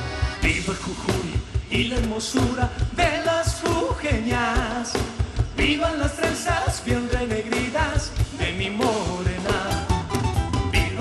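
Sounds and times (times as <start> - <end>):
driving drum beat: 0.0 - 11.0
live band playing upbeat song: 0.0 - 11.0.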